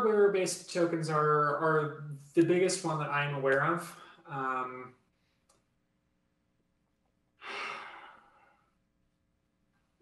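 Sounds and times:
man sighing: 0:07.4 - 0:08.7.

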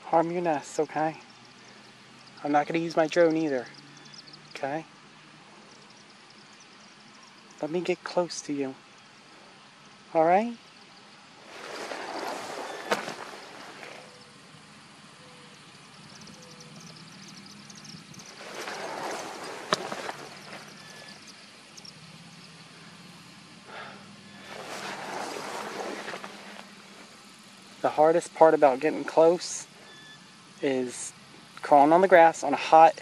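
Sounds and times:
grass rustling: 0:09.2 - 0:22.9, 0:23.7 - 0:28.0.

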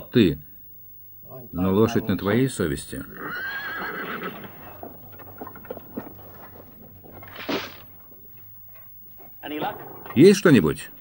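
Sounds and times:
horse whinnying: 0:03.0 - 0:05.9
hooves clopping: 0:03.0 - 0:11.0.

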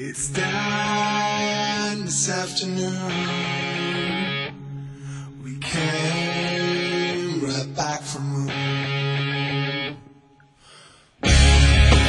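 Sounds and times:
guitar chord ringing: 0:00.4 - 0:10.2, 0:11.2 - 0:12.0.

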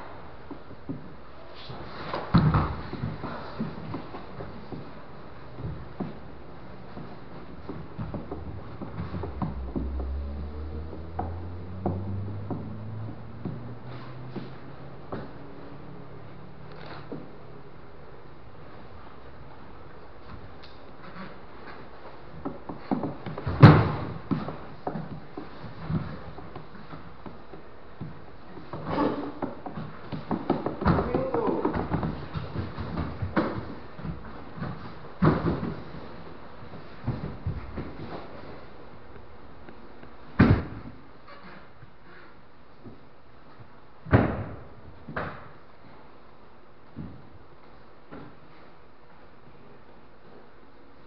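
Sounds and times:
bodies thumping on foam mat: 0:01.7 - 0:05.0, 0:05.6 - 0:10.2, 0:22.4 - 0:27.4, 0:28.0 - 0:38.6, 0:40.4 - 0:41.0
bodies thudding on mat: 0:01.8 - 0:05.0, 0:22.8 - 0:26.9, 0:40.4 - 0:41.0.

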